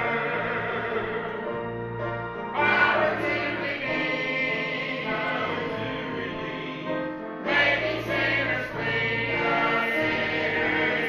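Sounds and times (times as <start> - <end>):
mixed choir singing in harmony: 0.0 - 11.0.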